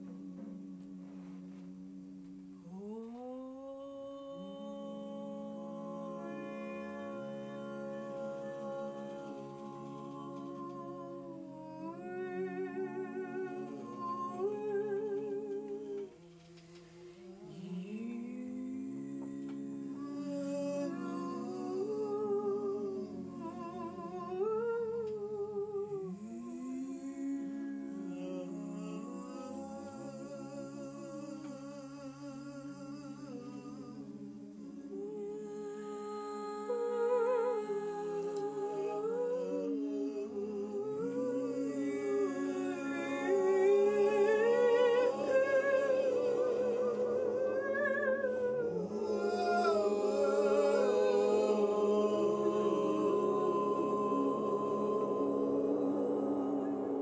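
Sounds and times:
group humming and wordless singing: 0.0 - 57.0.

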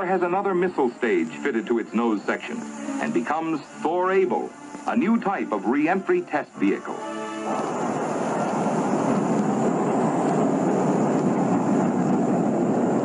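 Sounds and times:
rocket engine roar: 0.0 - 13.0.

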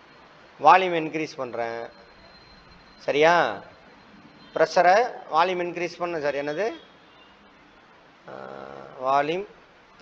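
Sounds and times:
low room hiss: 0.0 - 10.0
man humming: 8.3 - 9.1.

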